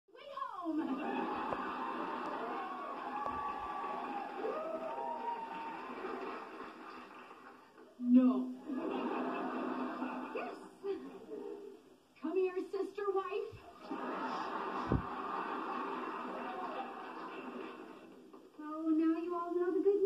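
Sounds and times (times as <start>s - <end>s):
television dialogue: 0.1s - 20.0s.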